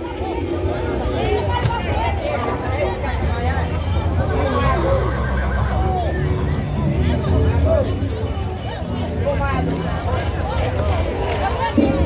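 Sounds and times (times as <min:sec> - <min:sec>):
crowd voices: 0:00.0 - 0:12.0.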